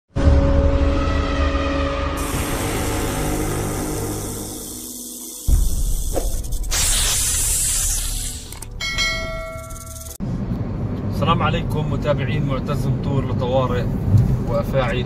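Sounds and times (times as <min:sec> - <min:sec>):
sudden boom: 0:00.2 - 0:04.7
loud hissing blast: 0:02.1 - 0:08.6
ringing bell-like chime: 0:08.8 - 0:10.2.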